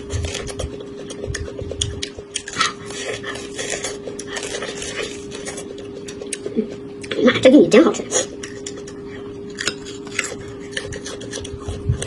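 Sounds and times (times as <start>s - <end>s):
chewing corn kernels: 0.0s - 12.0s
low hum: 0.0s - 12.0s.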